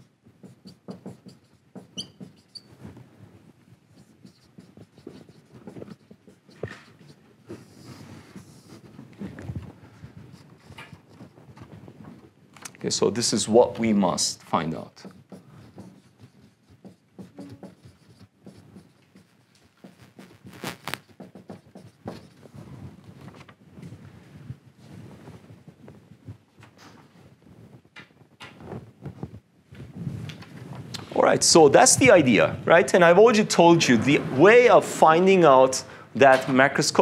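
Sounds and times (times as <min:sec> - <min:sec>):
marker writing on whiteboard: 0:00.0 - 0:12.3, 0:13.3 - 0:23.2
marker tip squeaks: 0:00.7 - 0:02.8, 0:16.9 - 0:18.3.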